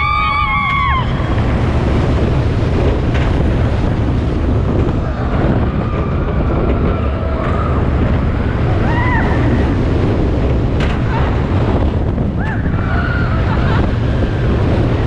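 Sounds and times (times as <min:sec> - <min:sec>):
roller coaster rumbling on track: 0:00.0 - 0:15.0
wind rushing over microphone: 0:00.0 - 0:15.0.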